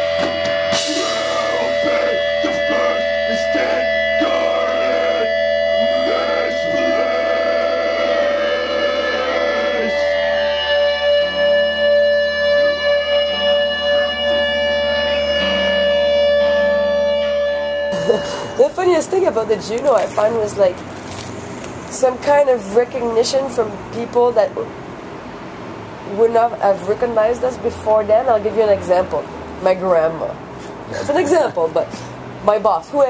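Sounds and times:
droning electric guitar: 0:00.0 - 0:20.9
low bass notes: 0:00.0 - 0:22.4.

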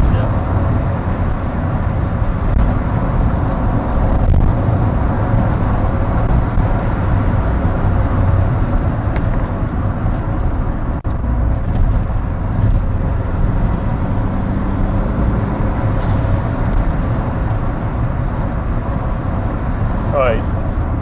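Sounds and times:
car engine and tyre road noise: 0:00.0 - 0:21.0.

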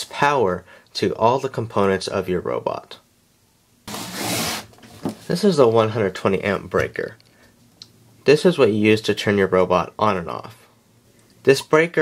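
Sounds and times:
cable scraping across tabletop: 0:03.9 - 0:04.8.

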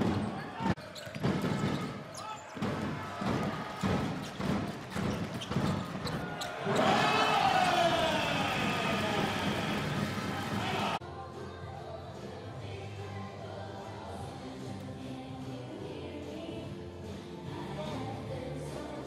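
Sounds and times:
arena crowd noise: 0:00.0 - 0:16.5
basketball bouncing on hardwood: 0:02.6 - 0:06.3
crowd cheering: 0:06.0 - 0:11.0.

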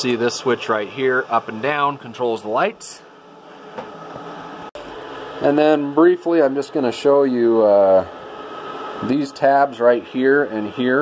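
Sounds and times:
projector cooling fans humming: 0:00.0 - 0:11.0.

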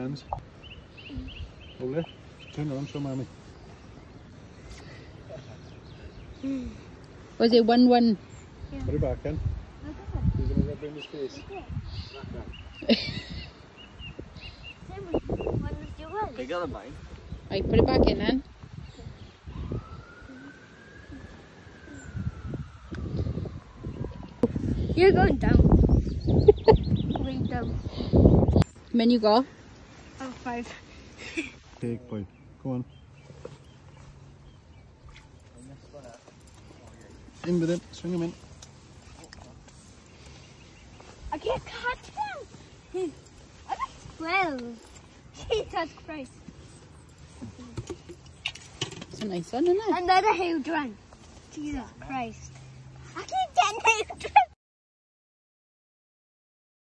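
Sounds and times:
steady outdoor background: 0:00.0 - 0:54.6
faint siren wailing: 0:19.0 - 0:25.6.

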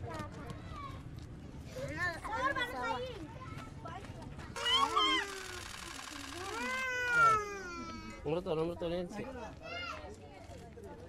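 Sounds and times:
young child crying: 0:04.6 - 0:05.6, 0:06.4 - 0:08.2.

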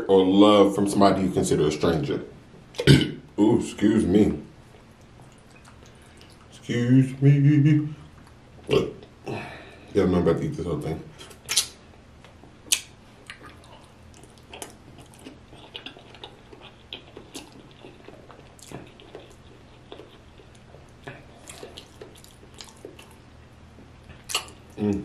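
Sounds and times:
wet chewing: 0:04.7 - 0:06.6, 0:11.2 - 0:25.0.

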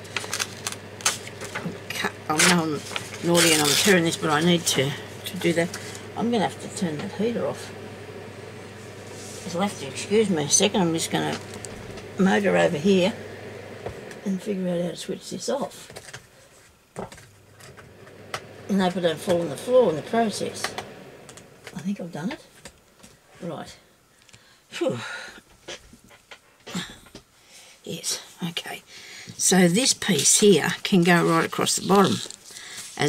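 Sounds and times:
faint low hum: 0:00.0 - 0:25.3.

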